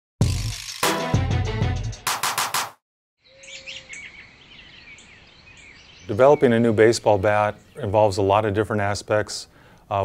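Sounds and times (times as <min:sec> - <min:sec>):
birds chirping: 0:03.2 - 0:10.0
faint outdoor background noise: 0:03.2 - 0:10.0.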